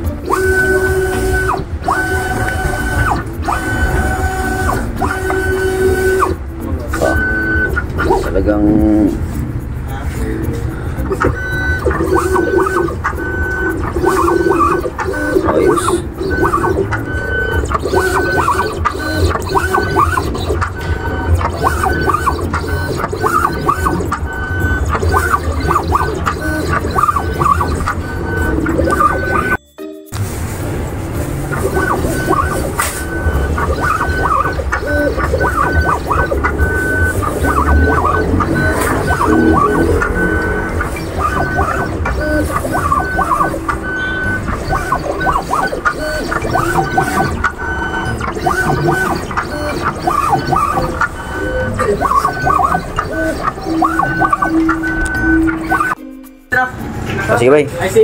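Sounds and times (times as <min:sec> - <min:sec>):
cutting plotter motors whining: 0:00.0 - 0:29.6, 0:30.7 - 0:56.0.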